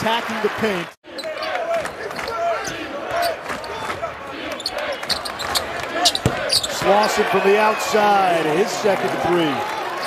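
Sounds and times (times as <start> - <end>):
sneaker squeaks: 4.6 - 7.1.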